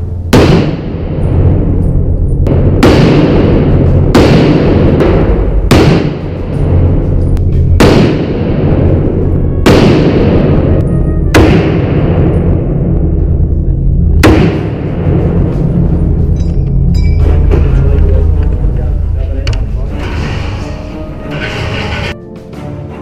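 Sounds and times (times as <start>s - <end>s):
rifle shots echoing indoors: 0.0s - 18.5s
background music: 0.0s - 23.0s.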